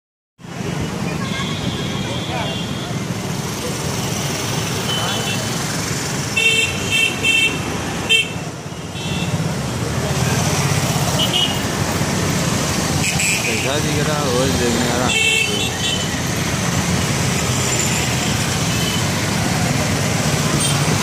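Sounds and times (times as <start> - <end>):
road traffic rumble: 0.4 - 21.0
vehicle horn tooting: 1.1 - 3.0.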